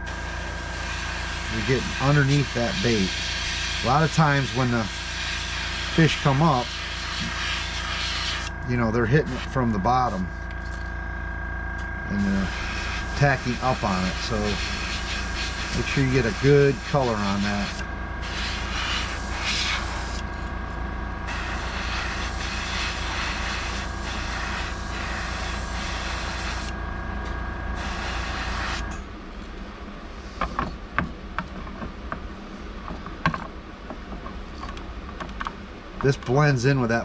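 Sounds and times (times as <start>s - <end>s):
compressor motor hum: 0.0s - 37.0s
airbrush hissing: 0.1s - 8.5s, 9.2s - 9.5s, 12.2s - 20.2s, 21.3s - 26.7s, 27.8s - 28.8s.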